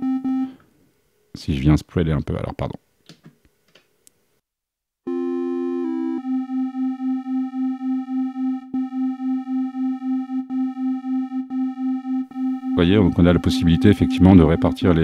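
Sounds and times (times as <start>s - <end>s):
pulsing synthesizer note: 5.1s - 15.0s.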